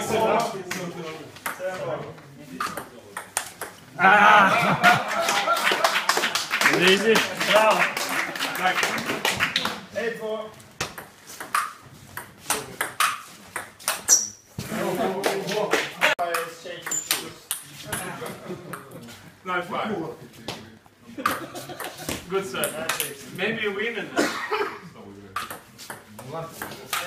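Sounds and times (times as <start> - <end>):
men exclaiming: 3.9 - 7.6.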